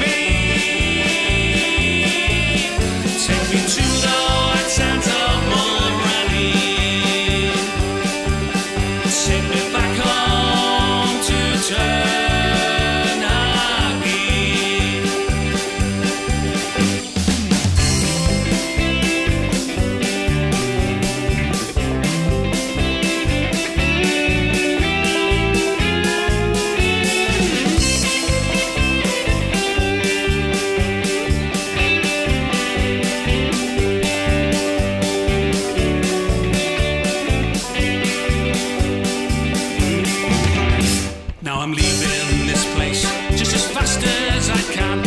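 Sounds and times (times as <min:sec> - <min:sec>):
bass and drums: 0:00.0 - 0:45.0
electric guitar: 0:00.0 - 0:45.0.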